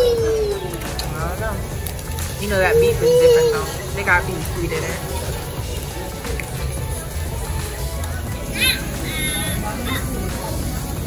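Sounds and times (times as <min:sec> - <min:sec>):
child squealing: 0:00.0 - 0:00.8, 0:08.5 - 0:10.1.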